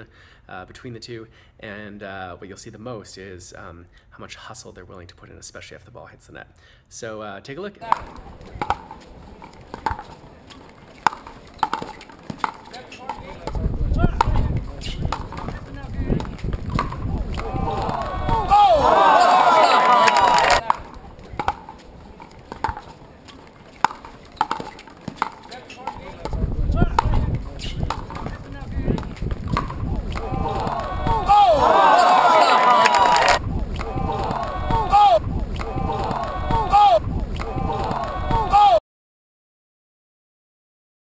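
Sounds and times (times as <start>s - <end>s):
paddles striking plastic ball: 7.8s - 18.8s, 20.1s - 31.6s
crowd cheering and shouting: 16.8s - 21.6s, 29.6s - 38.8s.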